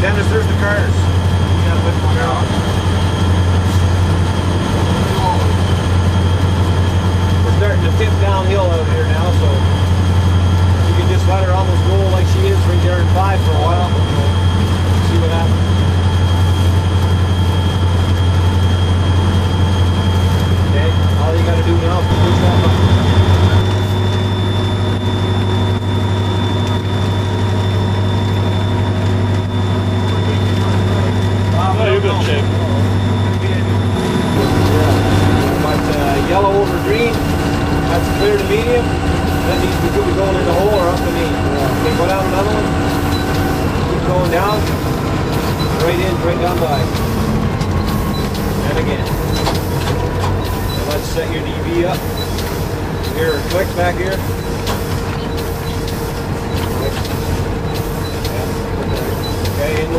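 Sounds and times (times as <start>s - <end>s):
locomotive engine drone: 0.0s - 59.9s
steady tones: 0.0s - 59.9s.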